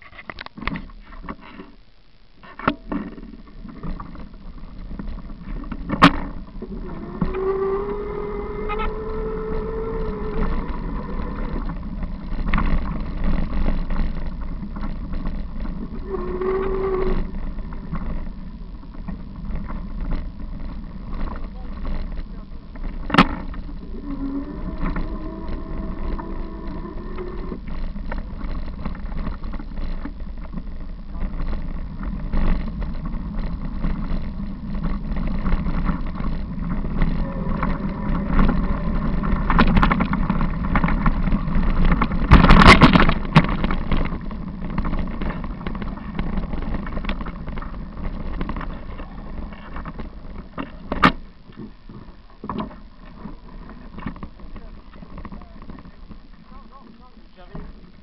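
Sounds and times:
wind and tyres rumbling: 0.0 - 58.0
bicycle jolt: 2.5 - 56.8.

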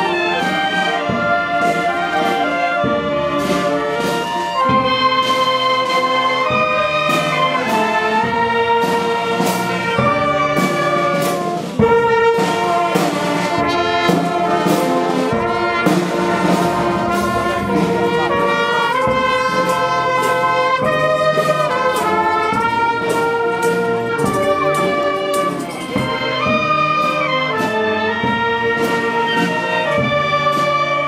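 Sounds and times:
marching band clarinets and brass: 0.0 - 31.0
drum beat: 2.8 - 26.9.

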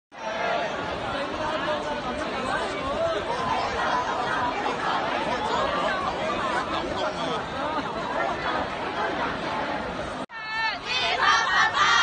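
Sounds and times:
babble of crowd voices: 0.1 - 12.0.

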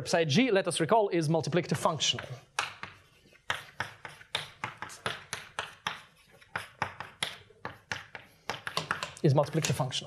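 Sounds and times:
chalk tapping on blackboard: 2.0 - 9.8.

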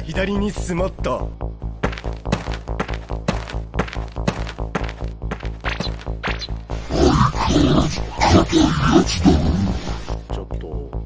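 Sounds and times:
rough growl-like vocal: 6.7 - 10.2.

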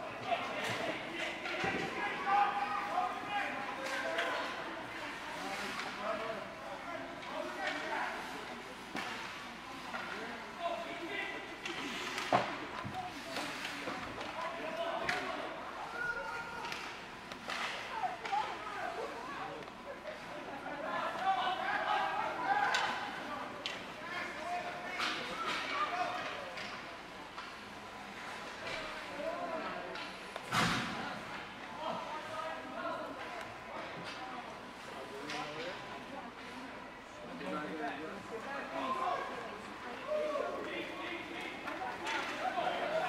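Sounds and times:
people talking and calling out: 0.0 - 43.0
hockey sticks knocking puck and boards: 16.6 - 18.5.

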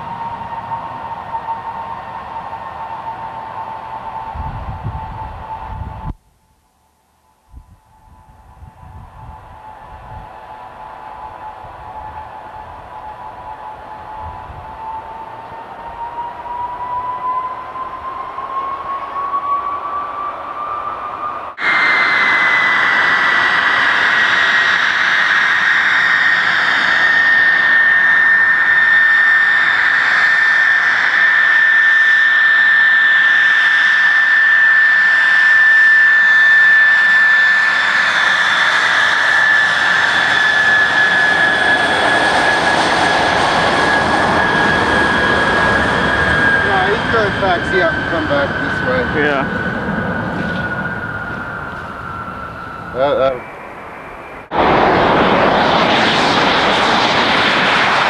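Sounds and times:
turbojet engine whining: 0.0 - 6.2, 7.2 - 58.0
jet noise rush: 20.5 - 58.0.

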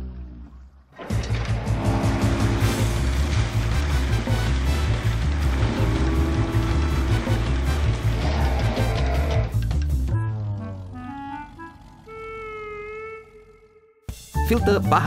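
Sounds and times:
cartoon motor boat running: 1.0 - 14.0
background music with steady beat: 1.2 - 10.2, 14.0 - 15.0.

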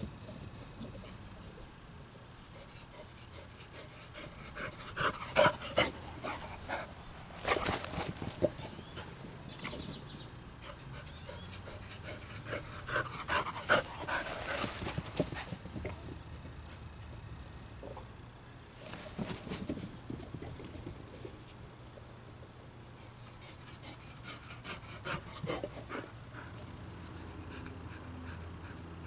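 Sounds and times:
dog sniffing ground: 2.4 - 16.9
dog panting: 2.5 - 9.8, 10.6 - 15.8, 23.3 - 29.0.

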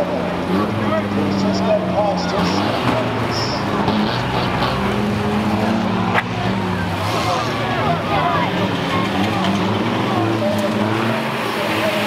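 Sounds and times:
van engines droning: 0.0 - 12.0
voices: 0.0 - 12.0.

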